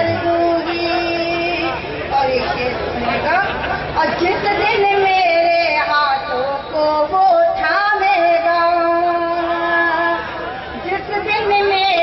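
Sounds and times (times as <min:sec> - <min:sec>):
woman reciting in sung style: 0:00.0 - 0:02.8, 0:04.0 - 0:12.0
audience murmur: 0:00.0 - 0:12.0.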